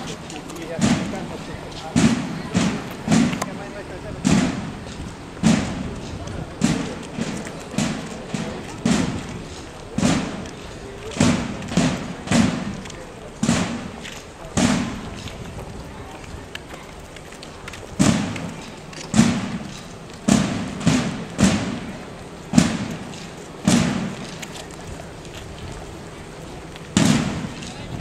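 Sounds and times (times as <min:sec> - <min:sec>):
bass drum and cymbals march: 0:00.0 - 0:28.0
people's voices: 0:00.0 - 0:28.0.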